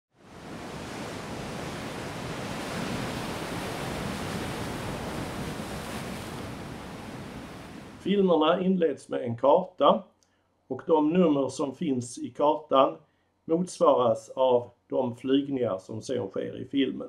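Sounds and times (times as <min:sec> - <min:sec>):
wind and surf rushing: 0:00.1 - 0:08.2.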